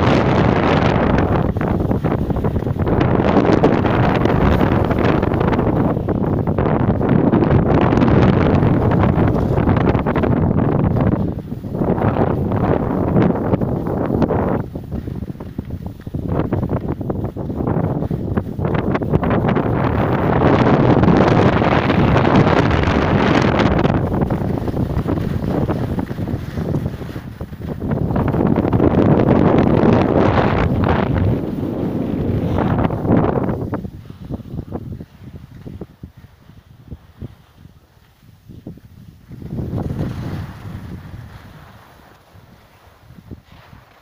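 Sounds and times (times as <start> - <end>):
wind buffeting microphone: 0.0 - 44.0.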